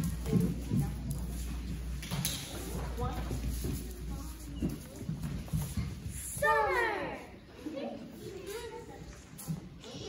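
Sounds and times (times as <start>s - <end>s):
footsteps on wooden floor: 0.0s - 6.4s.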